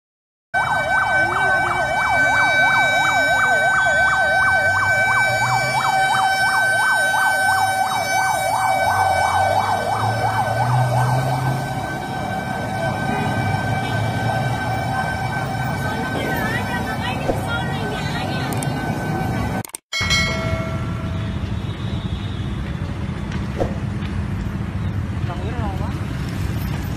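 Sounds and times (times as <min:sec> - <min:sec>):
fire engine siren yelping: 0:00.6 - 0:20.9.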